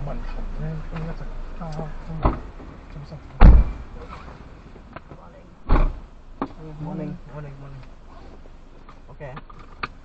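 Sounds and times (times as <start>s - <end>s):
quiet car cabin sound: 0.0s - 10.0s
car door shutting: 3.4s - 4.4s, 5.6s - 6.6s.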